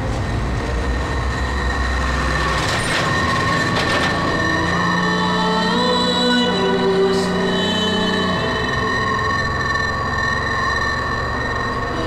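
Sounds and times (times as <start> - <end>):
lorry engine rumble: 0.0 - 12.0
road noise: 0.0 - 12.0
steady high whine: 0.0 - 12.0.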